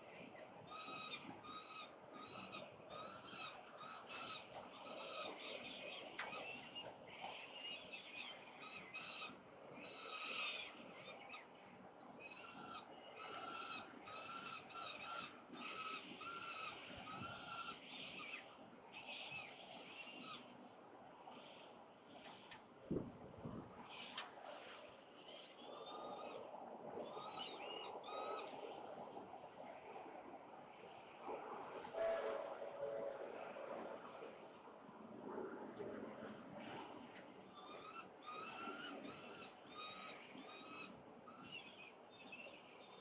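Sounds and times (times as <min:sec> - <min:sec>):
steady horn-like tone: 0:31.9 - 0:33.4.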